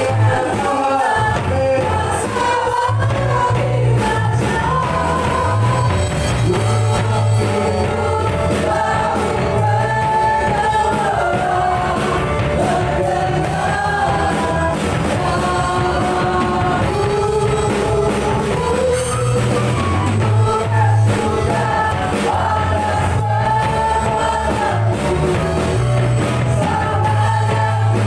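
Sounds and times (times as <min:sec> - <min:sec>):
drum kit beat: 0:00.0 - 0:28.0
electric guitar: 0:00.0 - 0:28.0
keyboard: 0:00.0 - 0:28.0
singers in unison: 0:00.0 - 0:28.0.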